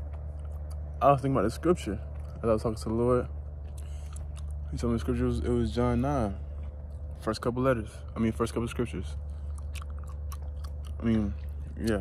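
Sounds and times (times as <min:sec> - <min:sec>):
steady low hum: 0:00.0 - 0:12.0
mouth clicks and smacks: 0:09.3 - 0:12.0.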